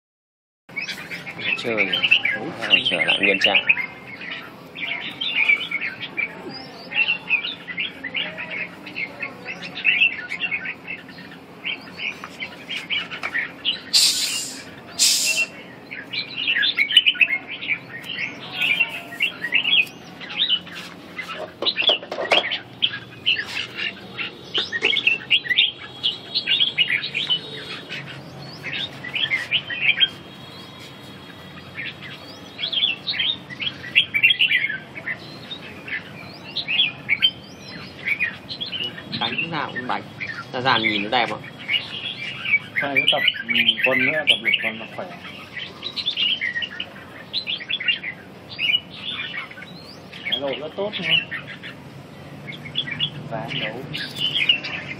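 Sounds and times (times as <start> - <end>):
birds chirping and warbling: 0.7 - 54.9.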